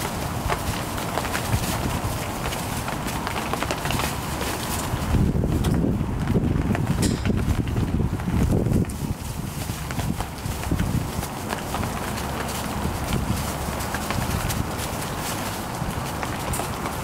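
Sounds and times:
rustle and crunch of shavings: 0:00.0 - 0:05.7, 0:07.4 - 0:17.0
light paw patters: 0:00.0 - 0:17.0
steady low rumble: 0:00.0 - 0:17.0.

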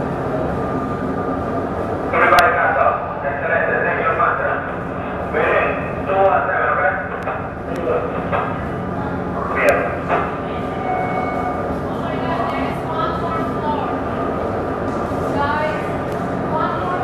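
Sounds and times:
steady low hum: 0:00.0 - 0:17.0
people talking: 0:02.1 - 0:10.8, 0:11.9 - 0:14.2, 0:15.3 - 0:17.0.

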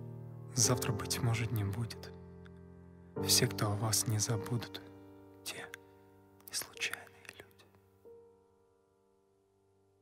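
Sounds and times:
soft background music: 0:00.0 - 0:10.0
person whispering a poem: 0:00.5 - 0:02.2, 0:03.2 - 0:07.8.

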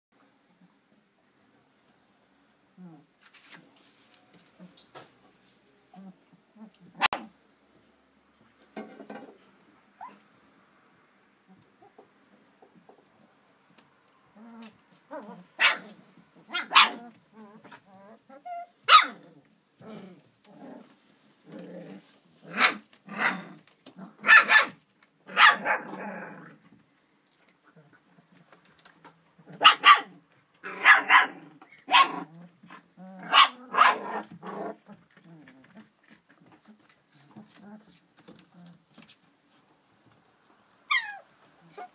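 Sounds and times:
puppies yapping and growling: 0:10.0 - 0:10.3, 0:14.3 - 0:21.0, 0:21.8 - 0:26.7, 0:29.4 - 0:38.8, 0:40.8 - 0:41.9.

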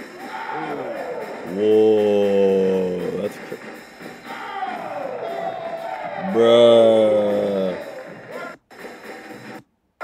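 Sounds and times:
crowd cheering: 0:00.0 - 0:09.6
breakdance battle music: 0:00.0 - 0:09.7.

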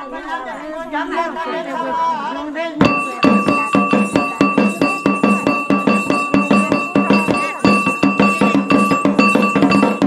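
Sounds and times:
person singing a chant: 0:02.8 - 0:09.0
ringing metallic strike: 0:02.8 - 0:10.0.

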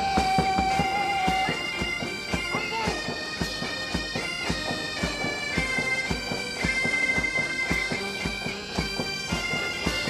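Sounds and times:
bagpipes playing a march: 0:00.0 - 0:10.0
regular drumbeat: 0:00.0 - 0:10.0.

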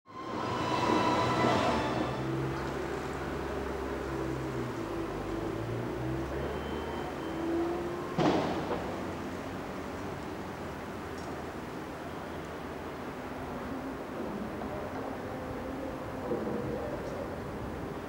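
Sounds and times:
vehicle rumble with whining: 0:01.8 - 0:18.0.

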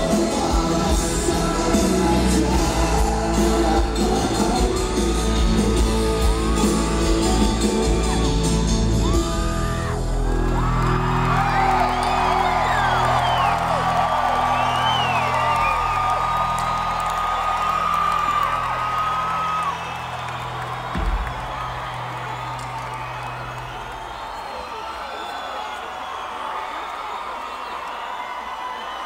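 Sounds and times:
live rock band: 0:00.0 - 0:23.8
audience whooping and shouting: 0:00.0 - 0:29.0.

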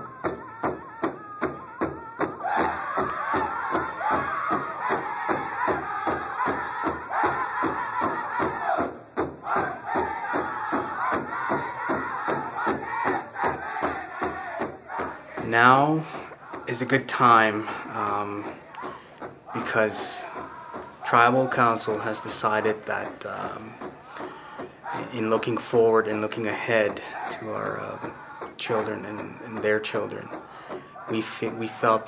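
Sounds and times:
voices singing high: 0:00.0 - 0:32.0.

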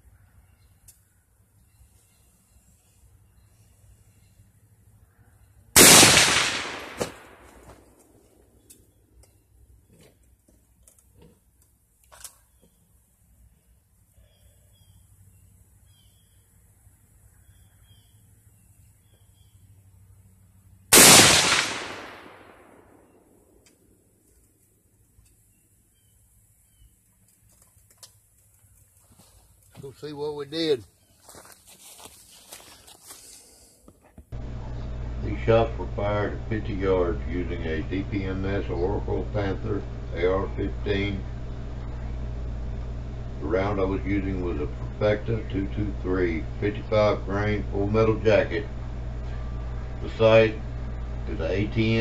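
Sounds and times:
rifle shots with echo: 0:05.8 - 0:07.7, 0:20.9 - 0:23.0.

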